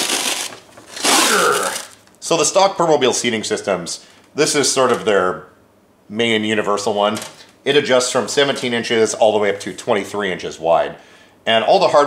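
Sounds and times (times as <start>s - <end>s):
fabric rubbing and ripping: 0.0s - 2.0s.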